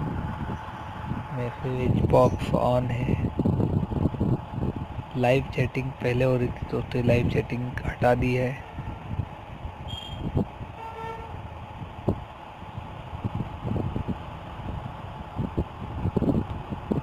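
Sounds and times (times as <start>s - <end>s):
faint horn toot: 9.9s - 11.4s.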